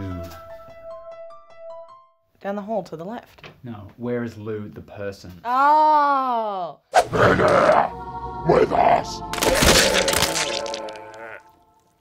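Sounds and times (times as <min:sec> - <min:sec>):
wet splattering vomit gush: 0:09.4 - 0:11.4.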